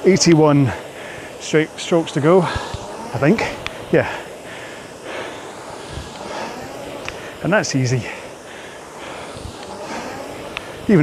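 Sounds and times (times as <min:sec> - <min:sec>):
fan flywheel whirring: 0:00.0 - 0:11.0.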